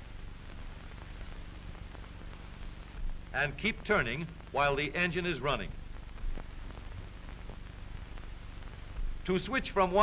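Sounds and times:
film soundtrack hiss and hum: 0:00.0 - 0:10.0.

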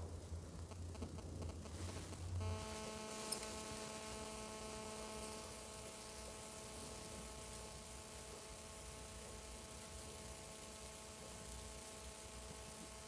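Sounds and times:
faint electrical hum: 0:00.0 - 0:13.0.

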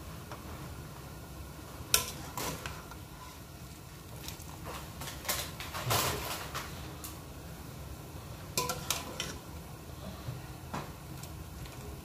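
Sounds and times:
wire skimmer clinking on metal pot: 0:08.6 - 0:09.4.

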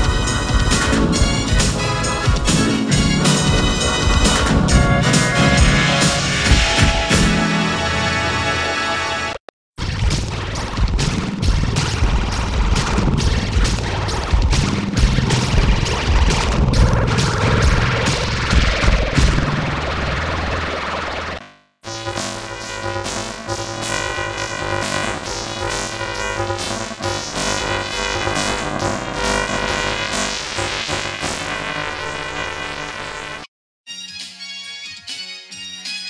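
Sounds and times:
electronic jingle with steady beat: 0:00.0 - 0:09.3
synthesizer tune: 0:00.0 - 0:09.4.

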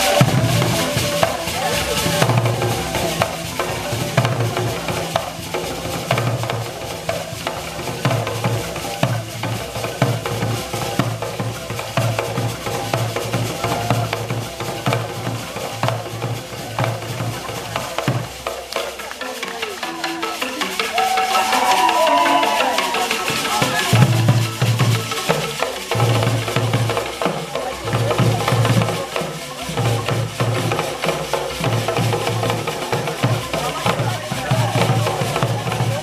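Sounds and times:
drums beaten in fast rhythm: 0:00.0 - 0:36.0.

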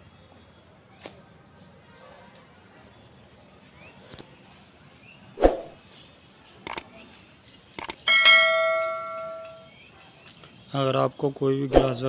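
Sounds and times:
notification bell ding: 0:08.1 - 0:09.7.

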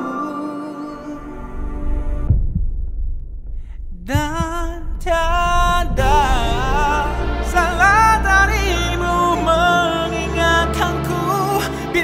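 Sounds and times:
low rumble: 0:01.2 - 0:11.2
deep bass thuds: 0:01.5 - 0:08.5.

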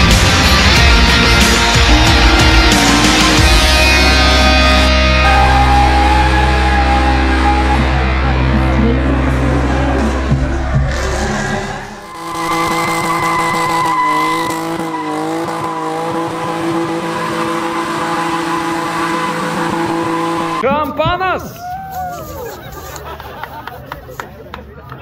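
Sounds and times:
music: 0:00.0 - 0:12.1
car engine at high revs: 0:00.0 - 0:20.6
tyres squealing: 0:10.8 - 0:20.7.

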